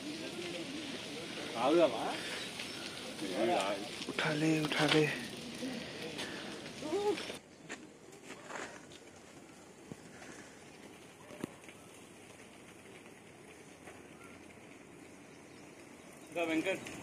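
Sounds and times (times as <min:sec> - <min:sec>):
faint outdoor background: 0:00.0 - 0:17.0.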